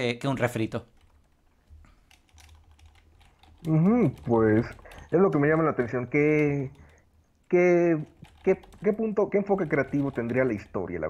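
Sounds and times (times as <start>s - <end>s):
faint keyboard typing: 0.4s - 11.0s.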